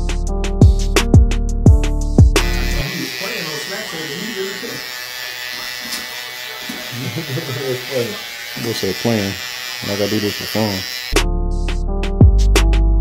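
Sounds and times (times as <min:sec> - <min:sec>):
music beat: 0:00.0 - 0:02.9, 0:11.2 - 0:13.0
electric hair trimmer buzzing: 0:02.2 - 0:11.3.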